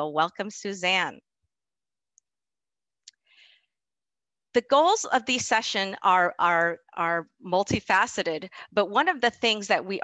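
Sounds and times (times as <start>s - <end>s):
woman talking: 0.0s - 1.2s, 4.6s - 10.0s.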